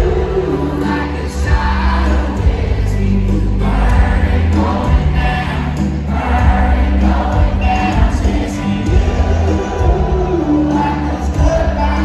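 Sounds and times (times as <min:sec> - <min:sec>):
crowd singing together: 0:00.0 - 0:12.0
live country music over loudspeakers: 0:00.0 - 0:12.0.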